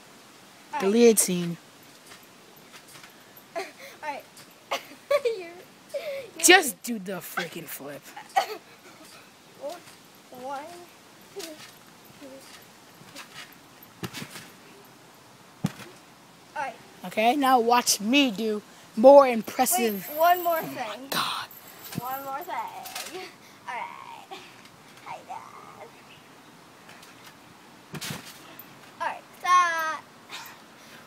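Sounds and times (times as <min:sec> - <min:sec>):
faint background hiss: 0:00.0 - 0:31.0
thumps on a trampoline mat: 0:12.4 - 0:14.6, 0:15.6 - 0:16.0, 0:27.9 - 0:28.9.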